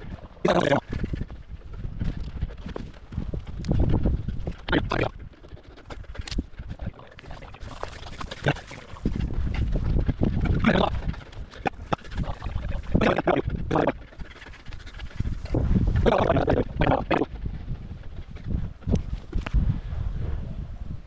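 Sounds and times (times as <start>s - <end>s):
wind rumble on microphone: 0.0s - 21.0s.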